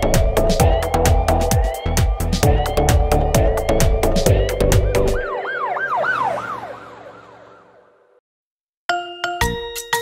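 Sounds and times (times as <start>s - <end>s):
dance beat music with drums: 0.0s - 5.2s
cartoon police siren wail: 0.6s - 8.2s.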